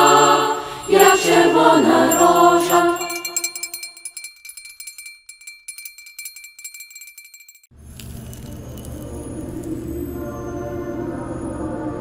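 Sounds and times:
choir singing: 0.0 - 3.6, 9.9 - 12.0
jingling percussion shaken: 0.0 - 9.2
ambient music drone: 9.2 - 12.0.

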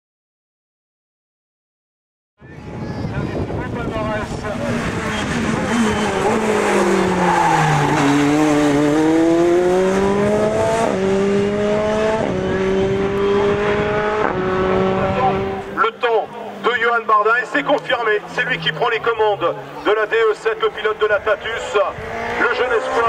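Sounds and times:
racing car engine revving: 3.4 - 23.0
gear upshifts: 3.8 - 15.8.

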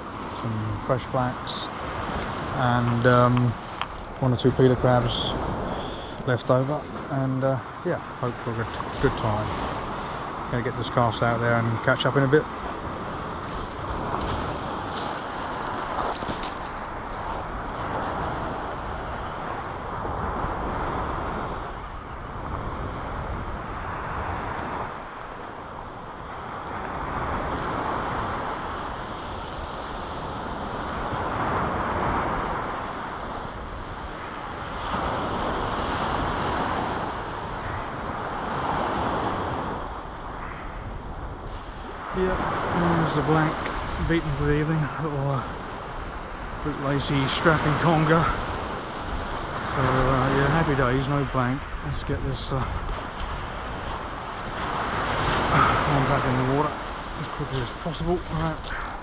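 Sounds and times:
waves breaking on shingle: 1.8 - 7.1, 13.2 - 19.3, 52.5 - 59.0.

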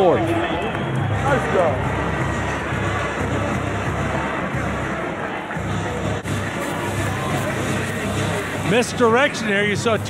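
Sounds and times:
crowd noise: 0.0 - 10.0
music in a stadium: 0.0 - 10.0.

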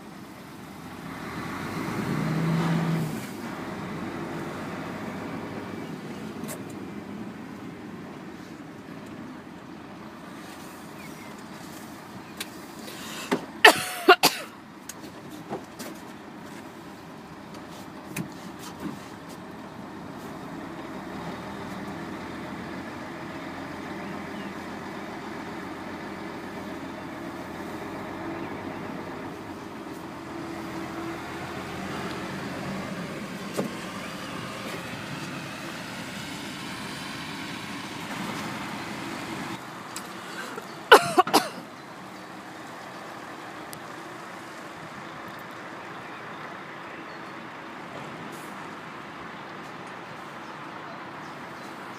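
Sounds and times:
truck diesel engine running: 0.0 - 15.4, 16.1 - 50.2.

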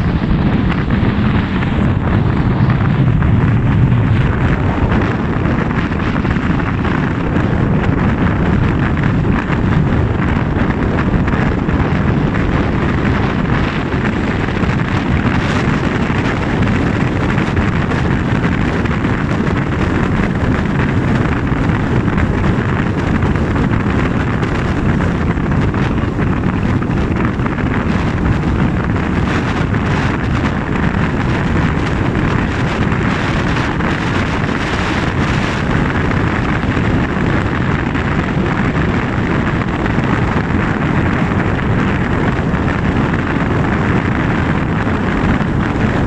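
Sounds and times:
car road and wind noise: 0.0 - 46.0
wind rumbling on microphone: 0.0 - 46.0.

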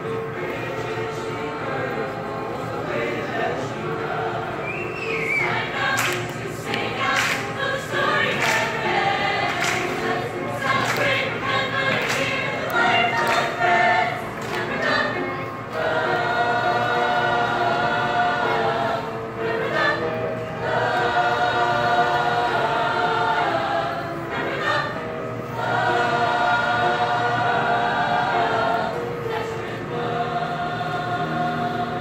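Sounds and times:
mixed choir singing: 0.0 - 32.0.

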